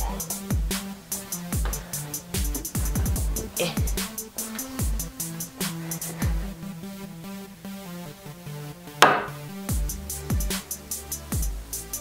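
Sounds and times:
electronic music with synth line: 0:00.0 - 0:12.0
mallet striking metal punch: 0:09.0 - 0:09.4.

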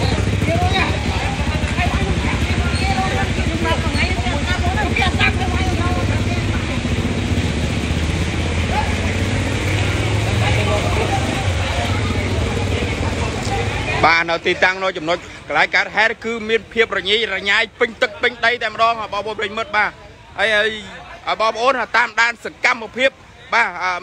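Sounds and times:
men talking and calling out: 0:00.0 - 0:24.0
traffic engines rumbling: 0:00.0 - 0:24.0.

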